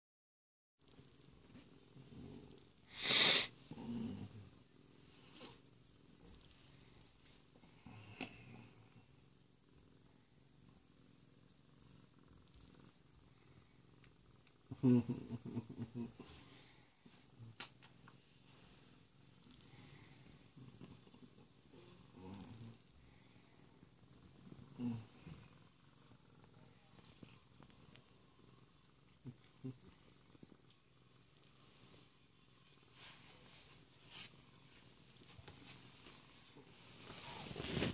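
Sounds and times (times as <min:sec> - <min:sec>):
cat purring: 0:00.8 - 0:37.9.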